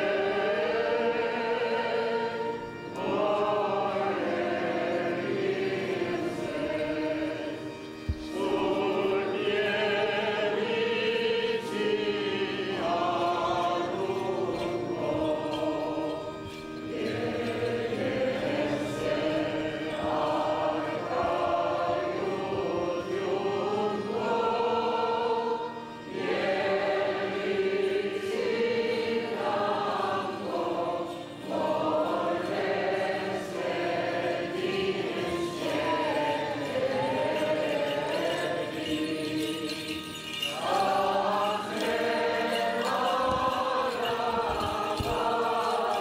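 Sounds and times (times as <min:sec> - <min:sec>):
choir singing a hymn: 0:00.0 - 0:46.0.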